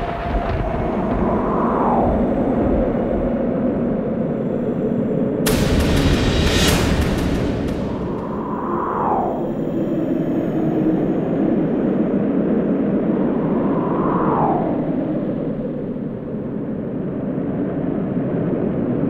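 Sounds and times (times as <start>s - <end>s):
wind rushing: 0.0s - 19.0s
falling whoosh: 5.5s - 10.2s.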